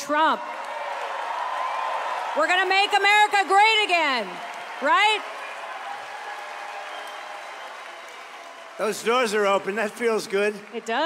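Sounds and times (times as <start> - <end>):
audience applauding: 0.0 - 11.0
man speaking: 8.8 - 10.6.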